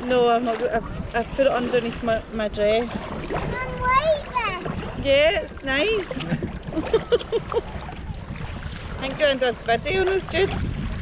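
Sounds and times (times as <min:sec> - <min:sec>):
choppy water: 0:00.0 - 0:11.0
paddle splashes: 0:00.0 - 0:11.0
people laughing: 0:06.1 - 0:07.7.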